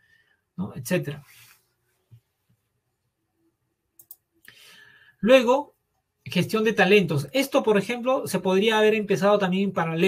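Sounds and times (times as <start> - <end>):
faint quick clicks: 4.0 - 4.6.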